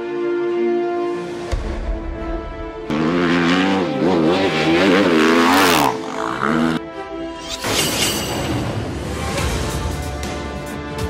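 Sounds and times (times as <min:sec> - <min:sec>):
motorbike engine revving: 0:02.9 - 0:06.8.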